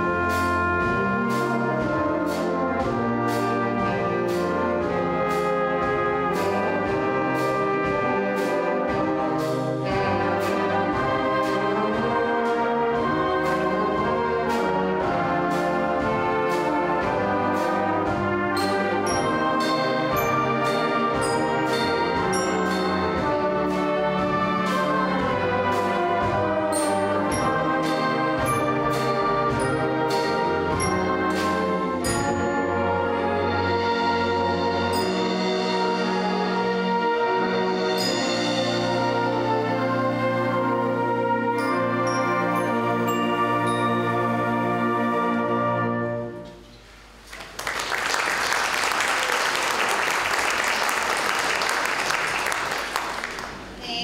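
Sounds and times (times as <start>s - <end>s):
percussion strokes on the beat: 0.0s - 44.9s
concert band playing: 0.0s - 54.0s
high-pitched percussion strikes: 18.6s - 25.4s, 26.7s - 33.0s, 34.5s - 36.8s, 37.4s - 39.9s, 41.6s - 44.5s.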